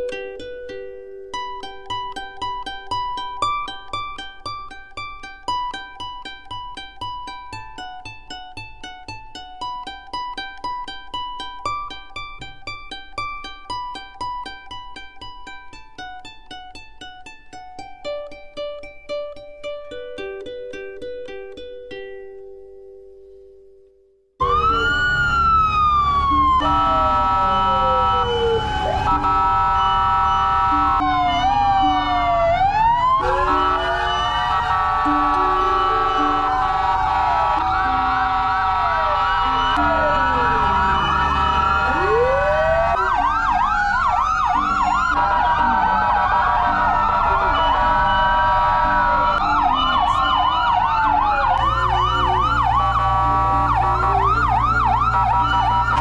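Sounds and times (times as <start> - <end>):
sirens wailing: 24.4 - 56.0
steady siren tones: 24.4 - 56.0.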